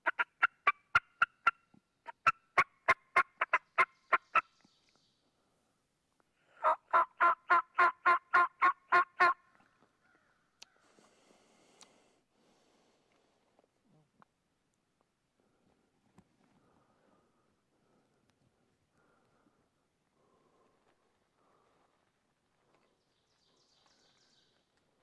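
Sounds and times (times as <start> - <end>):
turkey call yelping: 0.0 - 4.5, 6.6 - 9.4.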